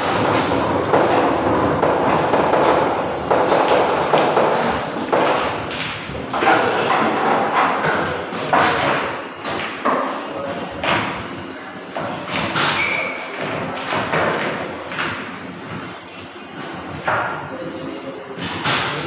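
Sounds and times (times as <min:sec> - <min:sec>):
pool balls clacking and rolling: 0:00.0 - 0:19.0.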